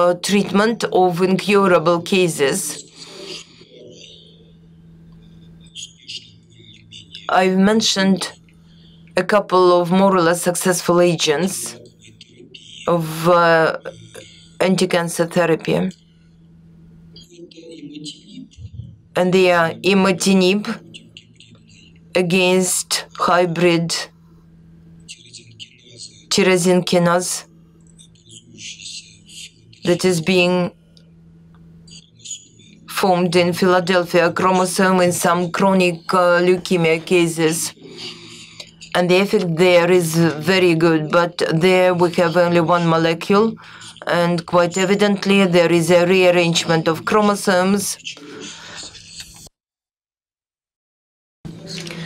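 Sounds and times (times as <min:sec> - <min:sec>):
low electrical hum: 0:00.0 - 0:49.5
microphone low hum: 0:11.2 - 0:20.9.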